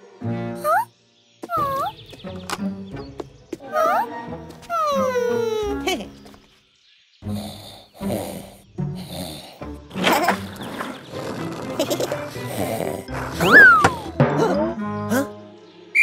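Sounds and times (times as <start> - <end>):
cartoon background music: 0.0 - 6.4, 7.2 - 16.0
cartoon sound effects: 1.5 - 1.9, 13.4 - 15.3
skateboard rushing past: 10.0 - 12.3.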